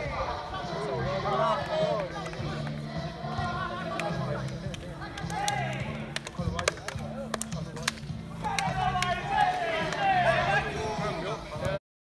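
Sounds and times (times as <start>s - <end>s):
men chatting indistinctly: 0.0s - 11.8s.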